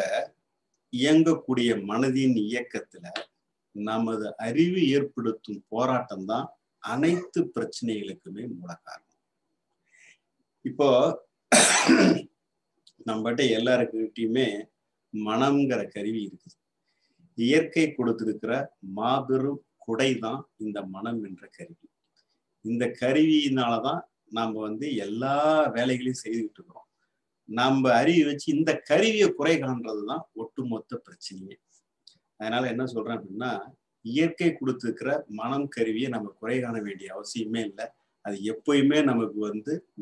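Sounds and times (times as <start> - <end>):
man speaking: 0.0 - 9.1, 10.6 - 11.3, 12.9 - 16.5, 17.4 - 21.9, 22.6 - 26.8, 27.5 - 31.6, 32.4 - 40.0
person clearing throat: 7.0 - 7.4, 11.5 - 12.3.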